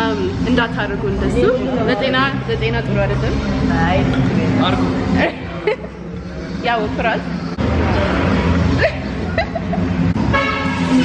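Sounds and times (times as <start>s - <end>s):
vehicle horn honk: 10.2s - 11.0s.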